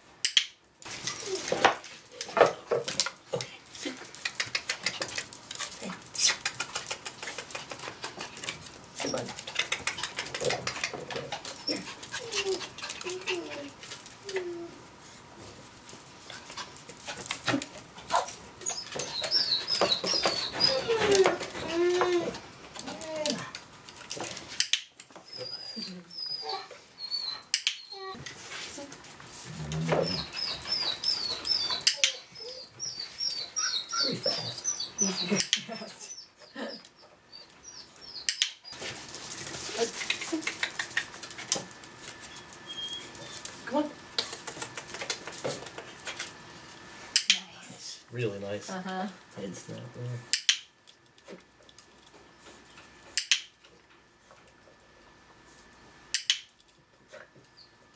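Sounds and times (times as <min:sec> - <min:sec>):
dog scrabbling: 0:01.0 - 0:14.3, 0:39.0 - 0:41.9, 0:44.2 - 0:46.4.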